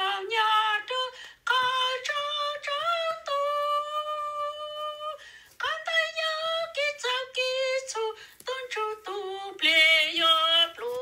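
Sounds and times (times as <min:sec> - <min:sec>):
woman singing a hymn: 0:00.0 - 0:11.0.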